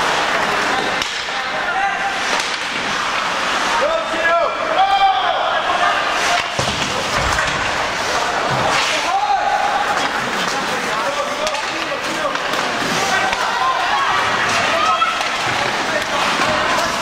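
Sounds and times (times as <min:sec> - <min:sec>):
skates and sticks on ice: 0:00.0 - 0:03.8, 0:05.9 - 0:17.0
voices shouting: 0:03.5 - 0:07.2, 0:07.8 - 0:17.0
puck or stick knock: 0:06.2 - 0:07.8.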